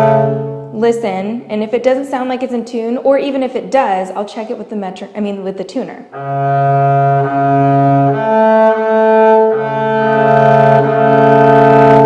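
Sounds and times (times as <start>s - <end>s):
double bass bowed double stop: 0.0s - 0.8s, 6.1s - 12.0s.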